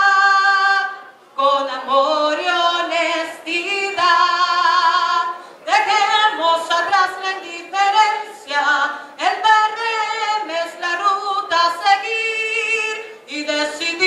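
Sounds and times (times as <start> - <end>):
woman singing unaccompanied: 0.0 - 14.0
singer breathing: 5.3 - 5.7.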